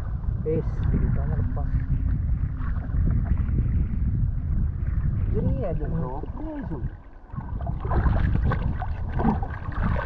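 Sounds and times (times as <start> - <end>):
shallow water sloshing: 0.0 - 10.0
wind buffeting microphone: 0.0 - 10.0.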